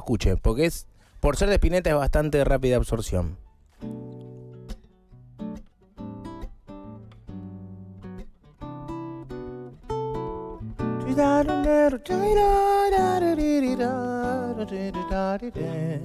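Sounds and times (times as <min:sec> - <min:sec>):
fingerstyle classical guitar: 0:03.3 - 0:16.0.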